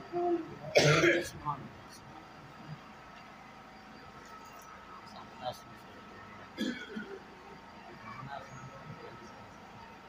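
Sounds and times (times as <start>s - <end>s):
faint background noise: 0.0s - 10.0s
man clearing throat: 0.7s - 1.4s, 6.6s - 7.2s.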